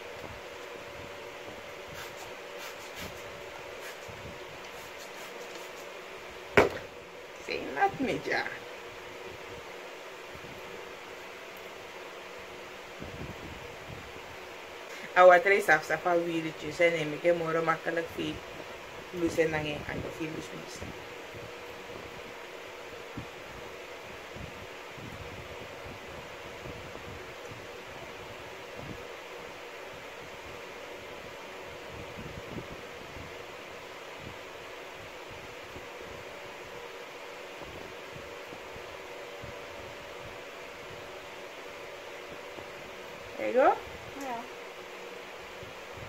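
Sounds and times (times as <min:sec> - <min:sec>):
room fan whirring: 0:00.0 - 0:46.0
hair being combed: 0:01.6 - 0:06.1.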